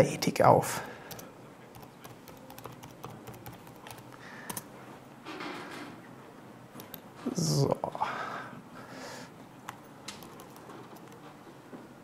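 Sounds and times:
keyboard key clicks: 0:09.7 - 0:11.2.

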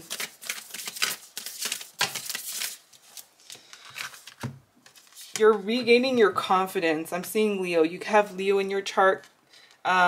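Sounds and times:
cards being shuffled: 0:00.0 - 0:05.5.

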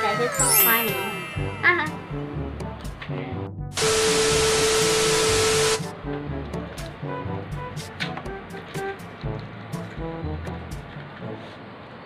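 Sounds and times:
background music: 0:00.0 - 0:11.7
loud static hiss: 0:03.8 - 0:06.0.

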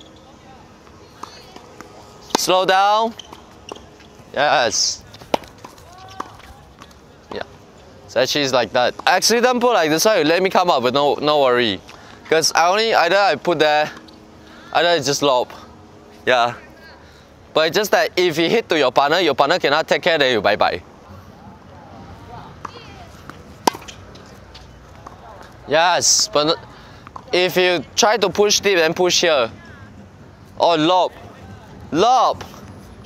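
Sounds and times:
racket hitting tennis ball: 0:01.2 - 0:02.5, 0:05.1 - 0:06.9, 0:22.6 - 0:25.2.

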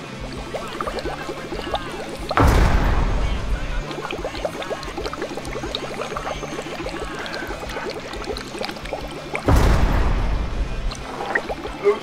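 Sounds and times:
water bong bubbling: 0:00.0 - 0:12.0
loud rush of noise: 0:02.4 - 0:05.1, 0:09.5 - 0:11.6.

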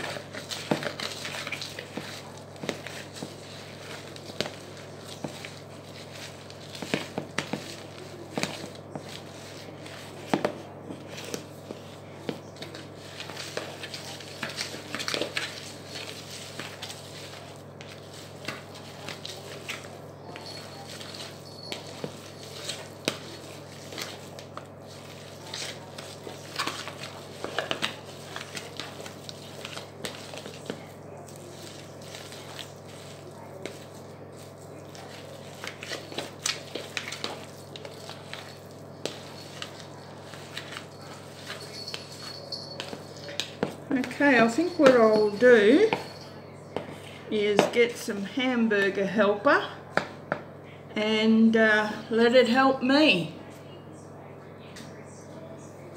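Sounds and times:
steady low hum: 0:00.0 - 0:55.9.

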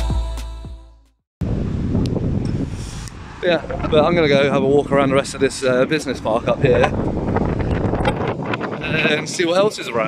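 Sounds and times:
music: 0:00.0 - 0:01.2
wind buffeting microphone: 0:01.4 - 0:10.0.

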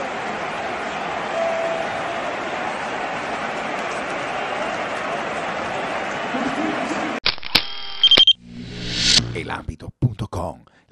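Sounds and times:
stadium crowd noise: 0:00.0 - 0:07.2
sharp clicks: 0:07.2 - 0:08.4
brief beeping tone: 0:07.6 - 0:09.2
deep hum: 0:08.2 - 0:09.6.

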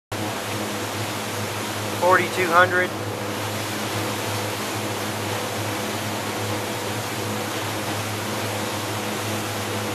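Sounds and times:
churning wake water: 0:00.1 - 0:09.9
powerboat engine running: 0:00.1 - 0:09.9.

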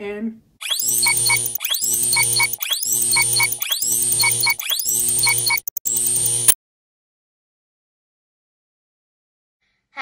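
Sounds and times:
short high beeps: 0:00.6 - 0:06.6.

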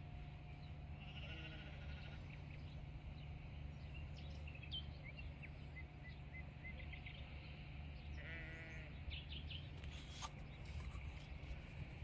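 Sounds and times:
low background rumble: 0:00.0 - 0:09.8
sheep bleating: 0:01.0 - 0:02.2, 0:08.2 - 0:08.9.

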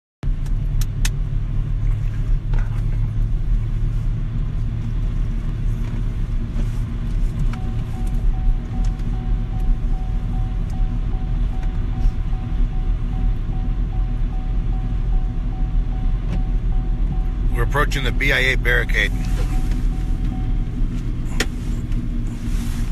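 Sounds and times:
car road rumble from inside: 0:00.2 - 0:22.9.

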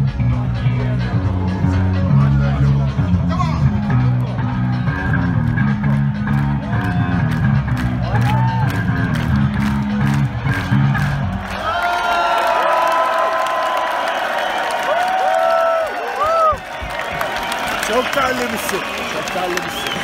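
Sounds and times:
electric and bass guitar playing: 0:00.0 - 0:11.6
crowd cheering: 0:04.2 - 0:20.0
crowd whistling and whooping: 0:08.0 - 0:09.0, 0:10.1 - 0:20.0.

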